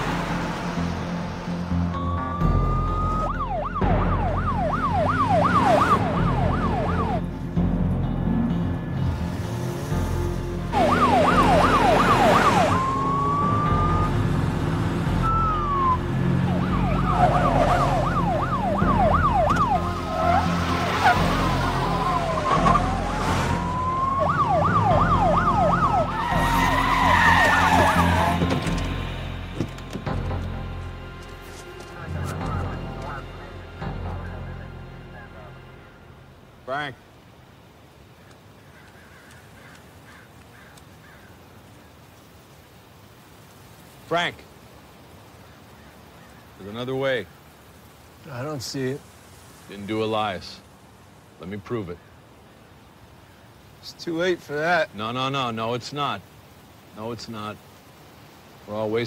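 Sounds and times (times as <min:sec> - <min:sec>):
police siren wailing and yelping: 0:02.0 - 0:07.3, 0:10.7 - 0:14.3, 0:15.2 - 0:28.4
second siren sweeping: 0:02.0 - 0:07.3, 0:10.7 - 0:14.4, 0:15.2 - 0:28.4.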